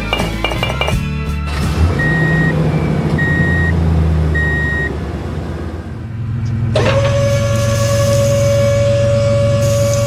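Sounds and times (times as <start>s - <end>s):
truck engine running: 0.0s - 10.0s
reversing alarm beeps: 3.2s - 3.8s, 4.4s - 4.9s.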